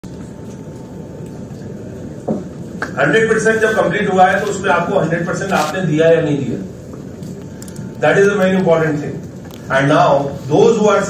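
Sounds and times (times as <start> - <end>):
air conditioning rumble: 0.0 - 11.0
faint steady whine: 0.0 - 11.0.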